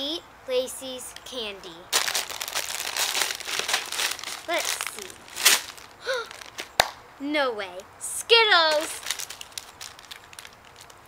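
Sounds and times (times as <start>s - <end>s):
candy wrappers crinkling: 1.9s - 6.9s, 8.7s - 11.0s
girl humming: 6.0s - 6.4s.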